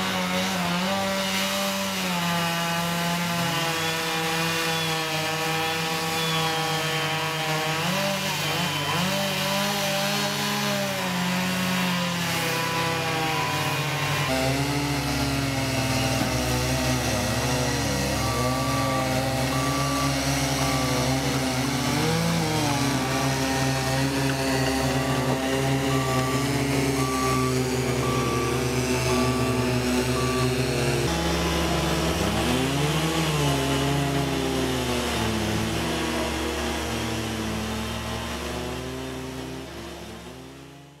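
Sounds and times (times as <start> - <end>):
chainsaw cutting log: 0.0 - 41.0
diesel engine revving: 0.0 - 41.0
short beeps: 25.9 - 31.8.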